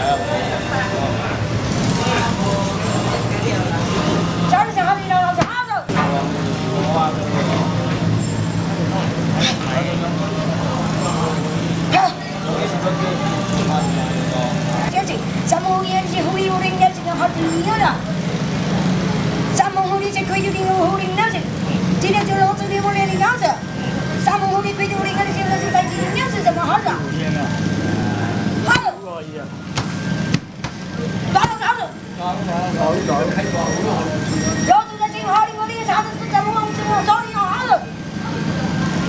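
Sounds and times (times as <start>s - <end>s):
people talking: 0.0s - 29.6s, 30.9s - 39.0s.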